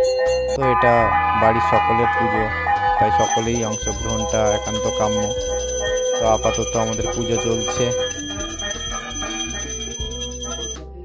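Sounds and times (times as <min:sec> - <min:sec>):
low sustained tones: 0:00.6 - 0:04.8
hand bell ringing: 0:03.2 - 0:10.8.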